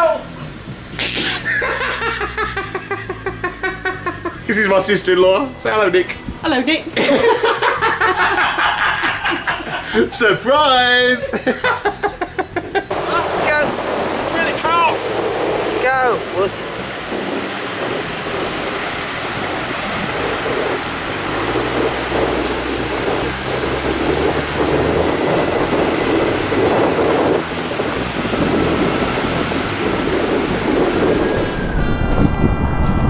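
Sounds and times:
waves breaking on beach: 0:00.0 - 0:04.7, 0:12.9 - 0:31.8.

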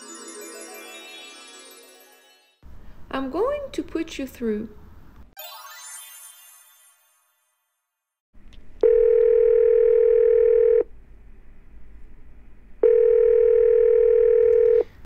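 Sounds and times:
telephone ringback beeps: 0:08.8 - 0:10.8, 0:12.8 - 0:14.9.

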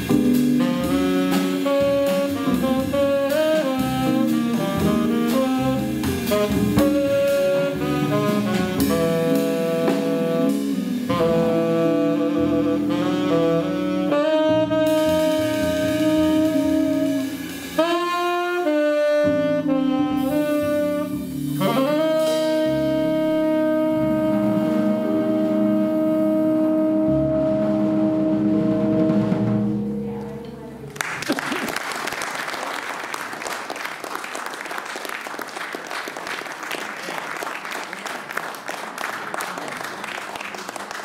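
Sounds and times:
jazz quartet final chord: 0:00.0 - 0:31.0
saxophone long note: 0:00.6 - 0:30.5
audience applauding: 0:30.9 - 0:41.0.

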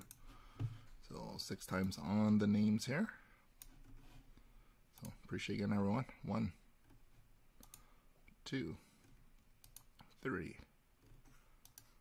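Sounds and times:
computer mouse clicks: 0:00.0 - 0:00.2, 0:05.0 - 0:05.2, 0:07.6 - 0:07.9, 0:09.0 - 0:10.2, 0:11.0 - 0:12.0.

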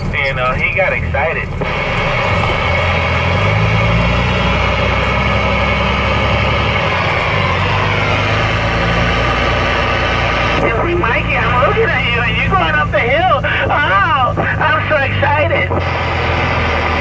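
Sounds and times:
truck engine running: 0:00.0 - 0:17.0.

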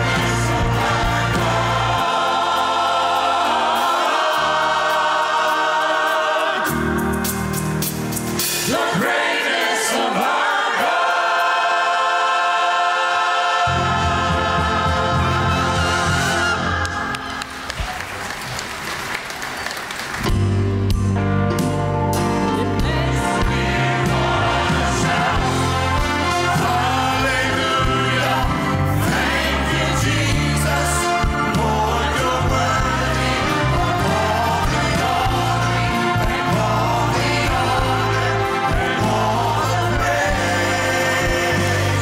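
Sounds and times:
orchestra playing: 0:00.0 - 0:11.1, 0:13.6 - 0:17.8, 0:20.3 - 0:42.0
choir singing: 0:00.0 - 0:17.8, 0:22.4 - 0:42.0.

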